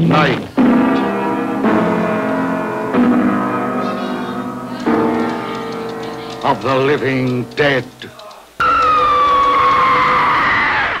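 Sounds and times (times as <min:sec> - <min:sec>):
long high-pitched scream: 0:08.6 - 0:11.0.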